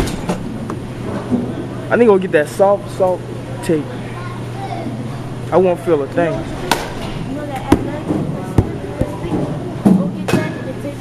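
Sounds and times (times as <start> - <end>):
voices in background: 1.2 - 11.0
balls struck sharp cracks: 6.7 - 7.2.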